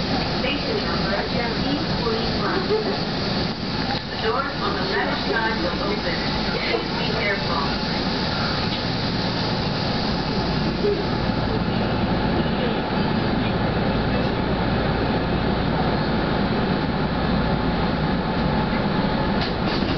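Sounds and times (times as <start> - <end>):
electric train running: 0.0 - 19.9.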